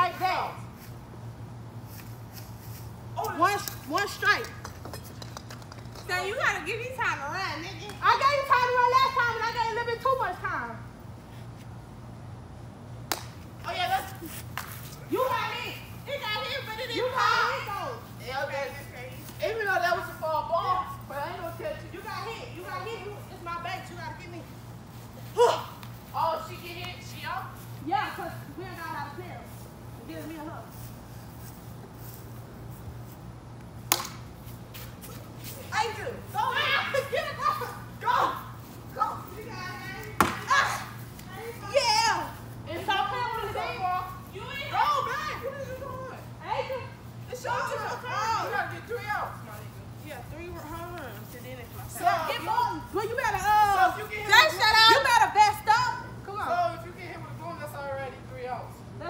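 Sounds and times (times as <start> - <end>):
children talking and shouting: 15.0 - 30.8, 35.1 - 59.0.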